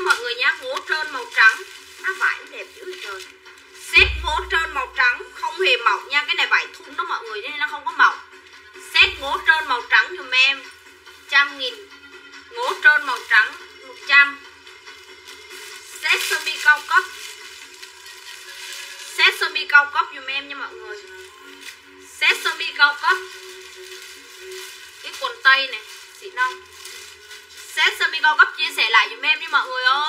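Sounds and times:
woman talking: 0:00.0 - 0:10.7, 0:11.3 - 0:11.9, 0:12.5 - 0:14.5, 0:16.0 - 0:17.2, 0:19.1 - 0:21.1, 0:22.1 - 0:23.4, 0:25.0 - 0:26.7, 0:27.7 - 0:30.0
steady low tone: 0:04.0 - 0:05.2.

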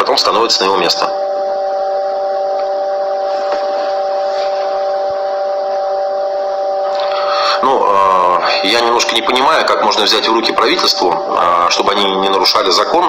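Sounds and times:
steady electronic tone: 0:00.0 - 0:13.0.

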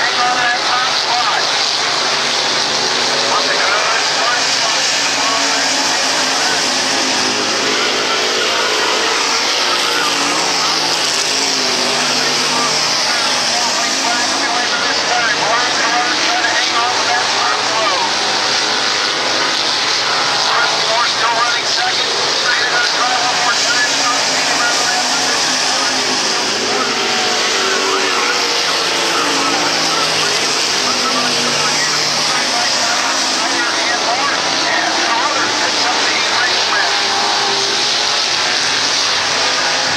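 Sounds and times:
background voices: 0:00.0 - 0:39.9
race car engines running hard: 0:00.0 - 0:39.9.

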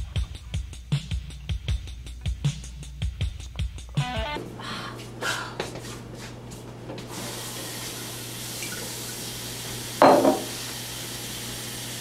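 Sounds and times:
guitar music: 0:04.0 - 0:04.4
tap running into sink: 0:08.6 - 0:10.8
dish clatter: 0:10.0 - 0:10.6.

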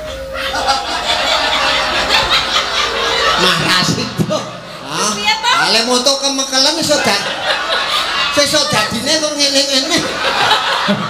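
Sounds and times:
people laughing: 0:00.0 - 0:05.4, 0:06.3 - 0:11.0.

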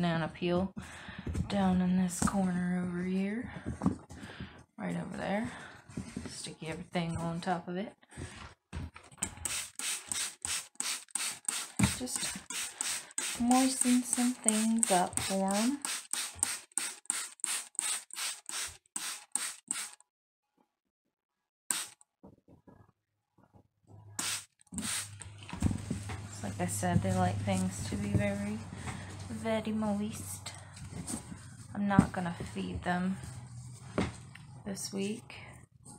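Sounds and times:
spray bottle spraying: 0:09.5 - 0:20.0, 0:24.2 - 0:25.2
spray bottle hiss: 0:24.2 - 0:25.2.

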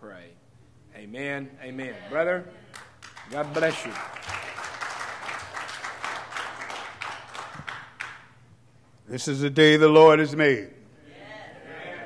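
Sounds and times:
congregation applauding: 0:02.7 - 0:08.4.

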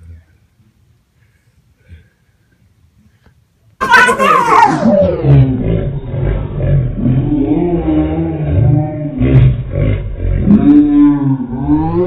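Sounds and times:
men yelling and roaring: 0:03.8 - 0:06.4.

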